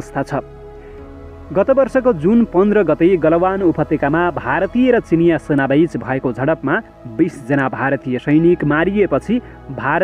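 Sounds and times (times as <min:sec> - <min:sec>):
man narrating: 0:00.0 - 0:00.5, 0:01.5 - 0:10.0.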